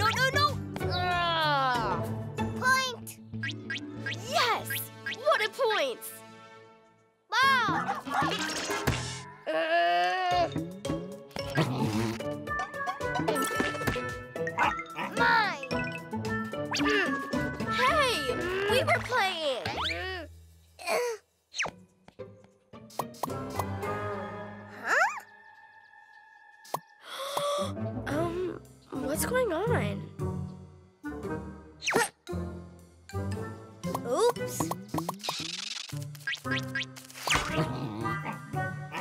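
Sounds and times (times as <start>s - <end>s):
children's background music: 0.0s - 6.6s, 7.2s - 9.2s, 10.3s - 20.0s, 22.2s - 35.1s, 37.5s - 39.0s
cartoon character cries: 9.4s - 10.5s.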